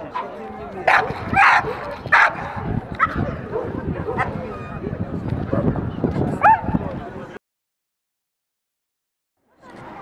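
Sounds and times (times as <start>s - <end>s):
crowd chatter: 0.0s - 7.4s, 9.4s - 10.0s.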